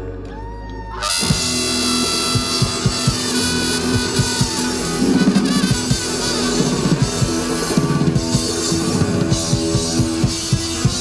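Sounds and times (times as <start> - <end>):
electric guitar: 0.0 - 11.0
upright bass: 0.0 - 11.0
trumpet: 1.0 - 11.0
drum beat: 1.2 - 11.0.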